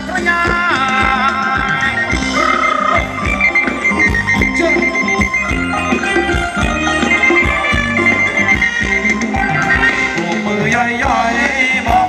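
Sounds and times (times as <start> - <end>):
person singing: 0.0 - 3.2, 9.9 - 12.0
live band dance music: 0.0 - 12.0
steady drum beat: 0.0 - 12.0
long held melodic notes: 1.9 - 10.4.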